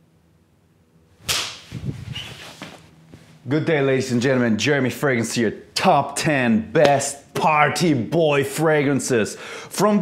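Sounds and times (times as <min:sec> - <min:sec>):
sharp whip-like swish: 0:01.2 - 0:02.8.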